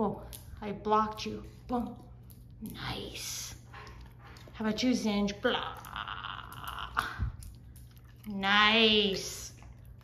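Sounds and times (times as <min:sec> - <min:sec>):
dog crunching cucumber: 0:00.2 - 0:10.0.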